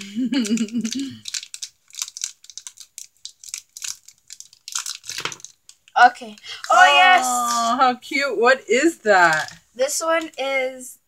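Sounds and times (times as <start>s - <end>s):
foil bag crinkling and tearing: 0.4s - 5.8s.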